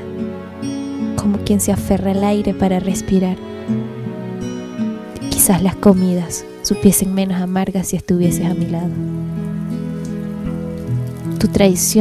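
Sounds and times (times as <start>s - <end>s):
shower water running: 6.6s - 12.0s.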